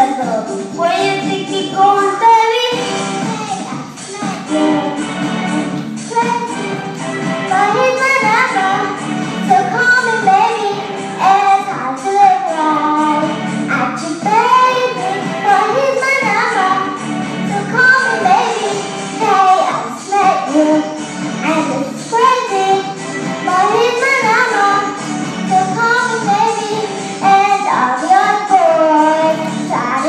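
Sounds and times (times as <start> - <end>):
girl singing into a microphone: 0.0 - 2.8, 6.1 - 6.6, 7.5 - 30.0
recorded backing track: 0.0 - 30.0.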